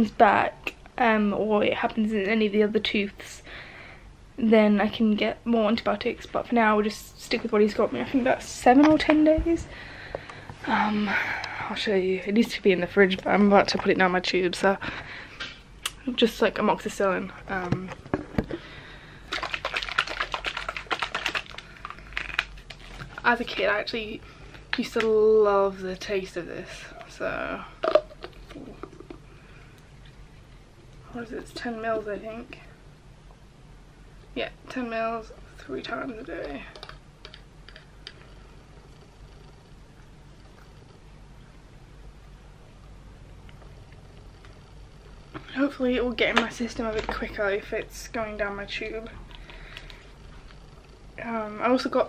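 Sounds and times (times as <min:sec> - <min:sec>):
faint room hum: 0:00.0 - 0:52.0
plastic medicine bottle rattling: 0:19.3 - 0:23.2, 0:27.8 - 0:29.2.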